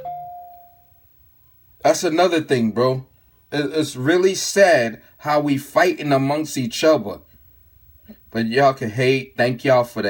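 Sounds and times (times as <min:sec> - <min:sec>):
two-tone chime: 0:00.0 - 0:01.0.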